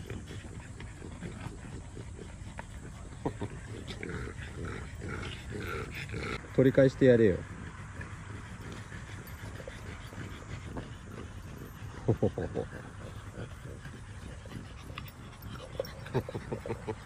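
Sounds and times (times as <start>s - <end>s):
puppies growling and yapping: 0.0s - 6.5s, 7.4s - 17.0s.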